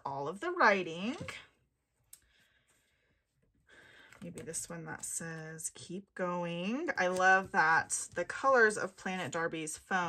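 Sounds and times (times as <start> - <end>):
woman speaking: 0.0 - 1.5, 4.2 - 10.0.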